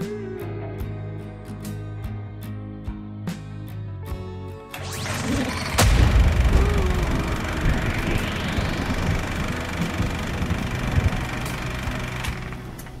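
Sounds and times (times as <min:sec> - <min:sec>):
rising whoosh: 0:04.7 - 0:11.4
dense low rumble: 0:04.8 - 0:13.0.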